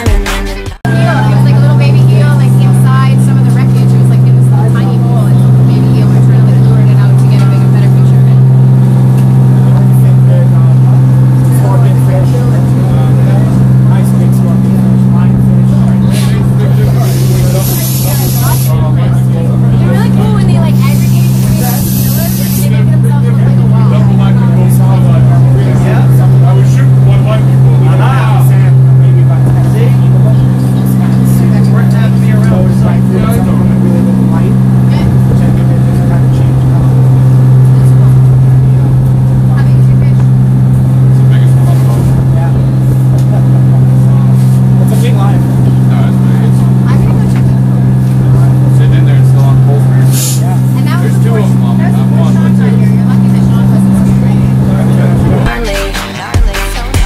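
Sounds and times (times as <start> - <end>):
boat engine humming: 0.8 - 57.0.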